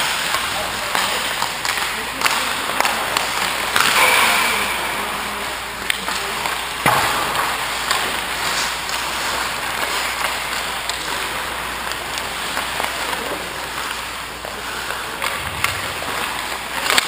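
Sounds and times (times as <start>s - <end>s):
skate blades scraping ice: 0.0s - 6.8s, 7.4s - 17.0s.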